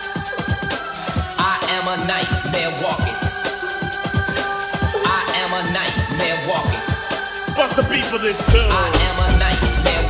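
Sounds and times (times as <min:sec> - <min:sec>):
rapping over synths: 0:00.0 - 0:10.0
heavy kick drum and bass: 0:06.0 - 0:10.0.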